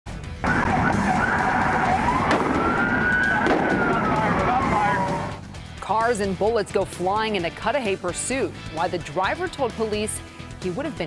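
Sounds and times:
car and road noise: 0.1 - 5.8
police siren wailing: 0.4 - 5.4.

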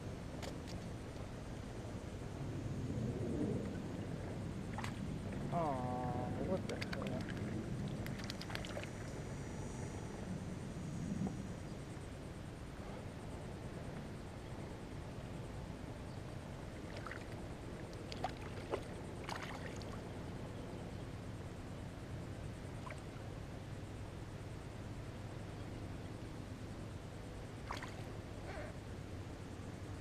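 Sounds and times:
low background rush: 0.0 - 30.0.

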